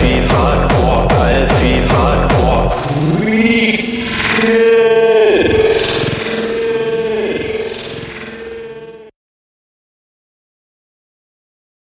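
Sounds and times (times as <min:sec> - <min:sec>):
heavy techno beats: 0:00.0 - 0:09.0.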